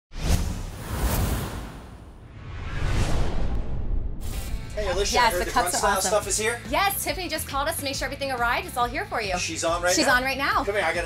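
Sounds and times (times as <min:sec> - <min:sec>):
cinematic whooshes: 0:00.1 - 0:05.5
deep rumble: 0:00.4 - 0:05.3.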